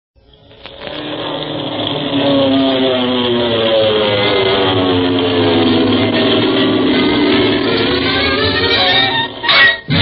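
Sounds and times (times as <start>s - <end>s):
propeller airplane engine drone: 0.2s - 10.0s.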